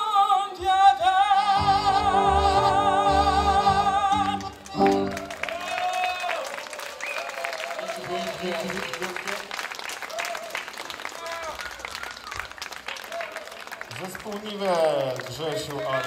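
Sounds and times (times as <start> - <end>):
audience applauding: 4.2 - 16.0.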